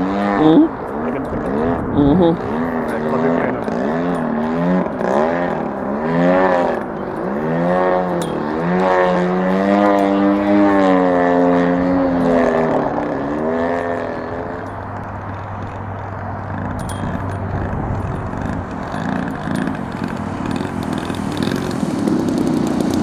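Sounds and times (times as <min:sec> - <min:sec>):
model plane engine and propeller: 0:00.0 - 0:23.0.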